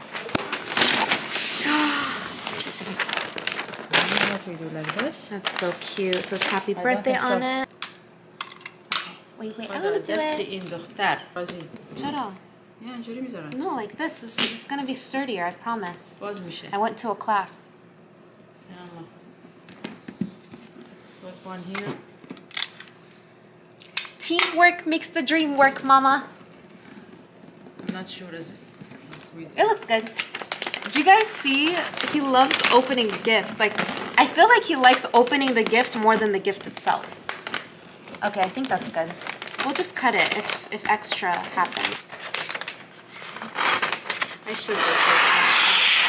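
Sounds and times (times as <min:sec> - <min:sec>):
wrapping paper rustling: 0:00.0 - 0:07.4, 0:28.9 - 0:46.0.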